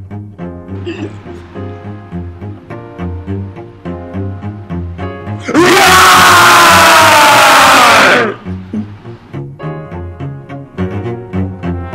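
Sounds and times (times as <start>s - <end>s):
background music with plucked bass: 0.0s - 5.6s, 8.0s - 11.9s
young men screaming together: 5.4s - 8.4s.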